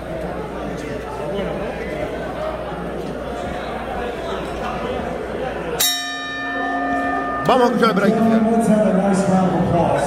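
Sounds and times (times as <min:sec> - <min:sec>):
crowd murmur: 0:00.0 - 0:10.0
boxing ring bell ringing: 0:05.8 - 0:09.0.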